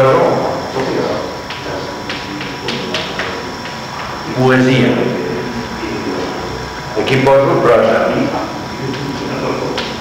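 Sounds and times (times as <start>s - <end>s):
recording hiss and hum: 0.0s - 10.0s.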